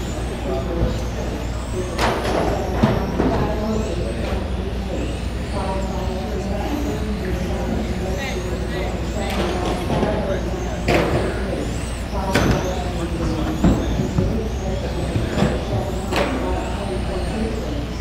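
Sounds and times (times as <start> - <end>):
rc car motors whining: 0.0 - 18.0
steady low hum: 0.0 - 18.0
voices: 0.0 - 18.0.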